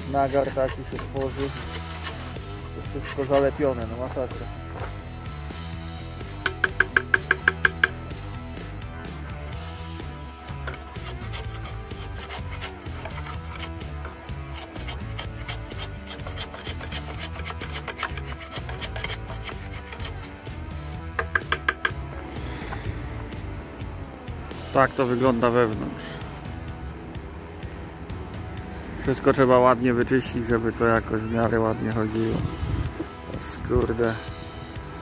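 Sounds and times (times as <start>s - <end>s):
screwdriver scraping in metal pipe: 0.0s - 3.6s, 10.6s - 20.4s
background music: 0.0s - 35.0s
sharp ringing taps: 6.4s - 8.0s.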